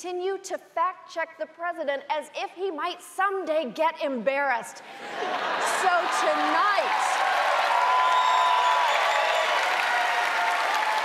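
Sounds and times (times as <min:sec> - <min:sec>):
people cheering: 0:05.2 - 0:11.0
audience applauding: 0:05.6 - 0:11.0.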